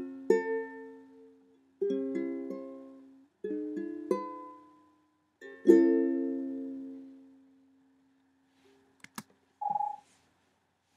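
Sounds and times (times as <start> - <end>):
sharp clicks: 9.0 - 9.3
short electronic beep: 9.6 - 10.0.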